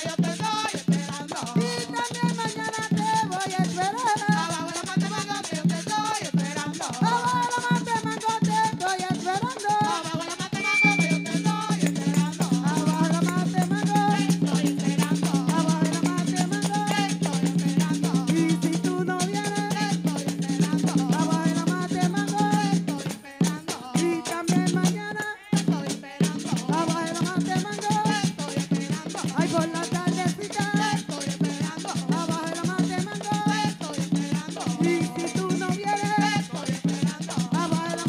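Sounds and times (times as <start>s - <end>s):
hand drum: 0.0s - 38.0s
tambourines jingling: 0.0s - 38.0s
women singing: 0.0s - 38.0s.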